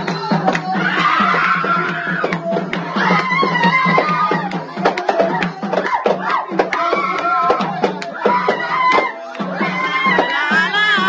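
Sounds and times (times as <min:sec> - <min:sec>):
group singing: 0:00.0 - 0:11.0
hand-drum beats: 0:00.0 - 0:11.0.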